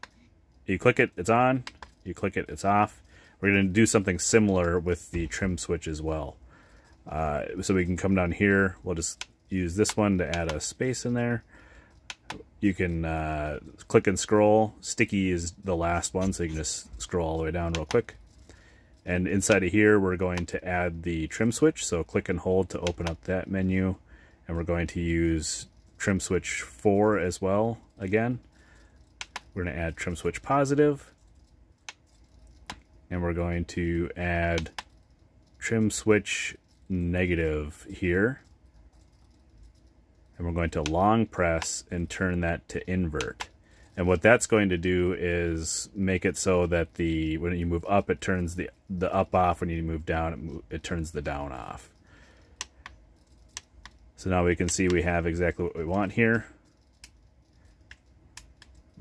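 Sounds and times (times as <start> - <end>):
faint transmitter control clicks: 17.6 - 18.6, 28.4 - 29.6, 51.9 - 55.0.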